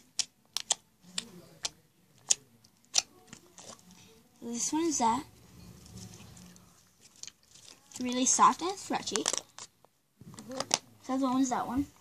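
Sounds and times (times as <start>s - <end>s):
slime clicking and squishing: 0.0s - 3.9s, 8.9s - 10.9s
faint low hum: 0.0s - 12.0s.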